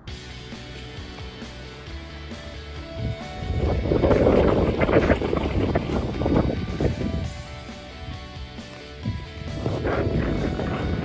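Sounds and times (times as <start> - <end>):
wind buffeting microphone: 2.5 - 11.0.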